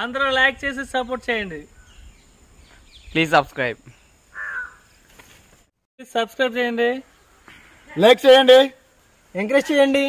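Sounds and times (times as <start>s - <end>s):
crow cawing: 4.3s - 5.0s.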